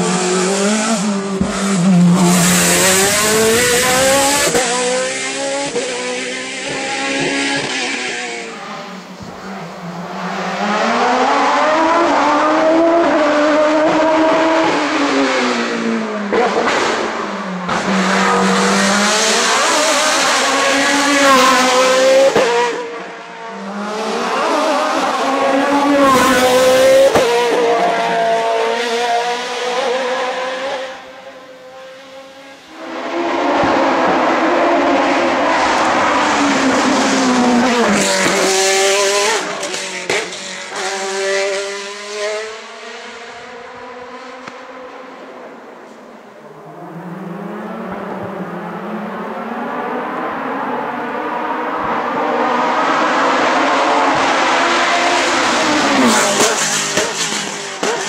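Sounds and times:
racing engine at full throttle: 0:00.0 - 0:58.0.

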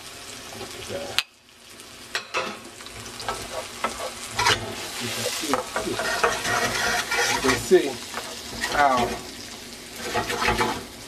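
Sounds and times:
vegetables sizzling in a skillet: 0:00.0 - 0:11.0
wooden spoon scraping a pan: 0:02.4 - 0:09.4, 0:10.0 - 0:11.0.

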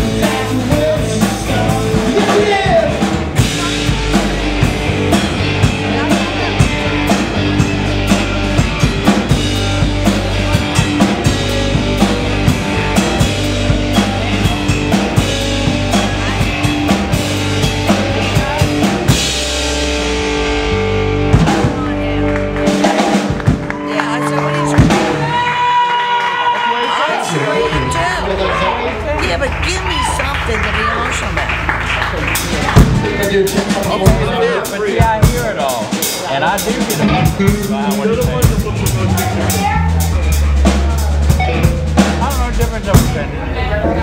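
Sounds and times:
drum hits: 0:00.0 - 0:25.7, 0:32.2 - 0:44.0
rock band playing loudly: 0:00.0 - 0:44.0.

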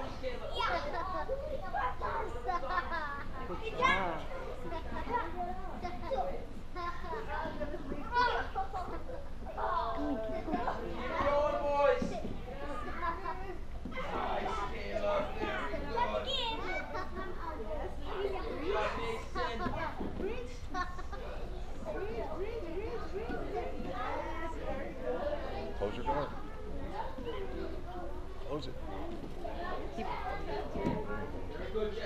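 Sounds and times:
children's voices: 0:00.0 - 0:31.9.

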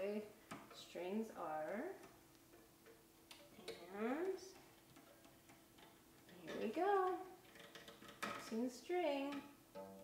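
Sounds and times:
clicks and taps on lyre pegs: 0:00.4 - 0:10.0
person speaking: 0:03.5 - 0:04.7, 0:06.3 - 0:07.4.

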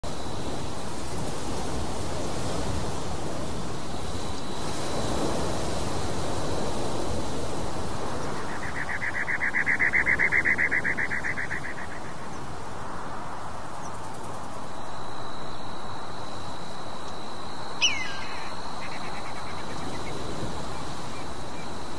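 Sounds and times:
rushing outdoor noise: 0:00.0 - 0:21.9
animal trilling: 0:17.8 - 0:19.8.

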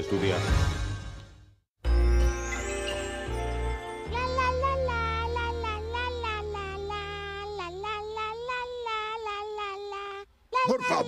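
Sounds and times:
high nasal voice singing: 0:04.1 - 0:11.0.

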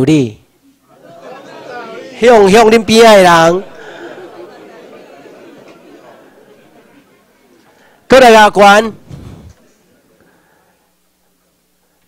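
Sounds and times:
murmur of many voices: 0:00.6 - 0:11.7.

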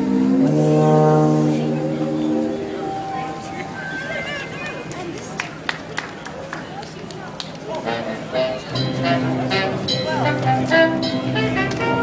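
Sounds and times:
tuba playing low notes: 0:00.0 - 0:04.2, 0:07.8 - 0:12.0.

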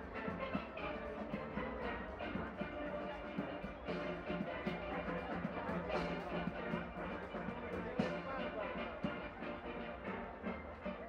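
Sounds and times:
drums: 0:00.0 - 0:11.0.

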